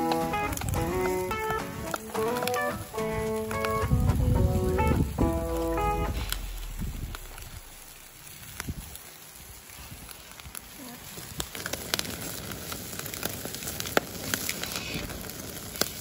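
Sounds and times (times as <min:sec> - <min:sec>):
charcoal fire crackling and popping: 0:00.0 - 0:16.0
food sizzling on a grill: 0:00.0 - 0:16.0.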